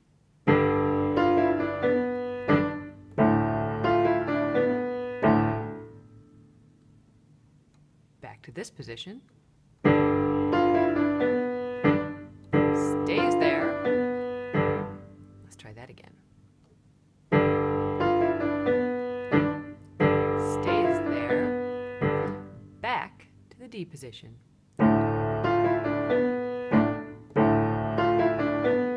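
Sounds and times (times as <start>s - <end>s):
piano playing: 0.4s - 6.6s, 9.8s - 15.5s, 17.3s - 22.8s, 24.8s - 28.9s.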